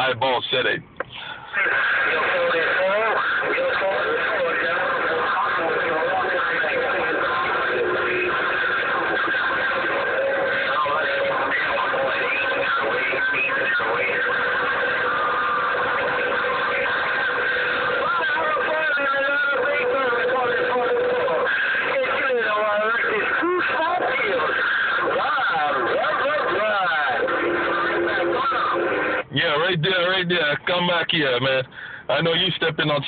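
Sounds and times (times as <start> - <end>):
garbled radio voices: 0.0 - 33.0
radio static noise: 0.0 - 33.0.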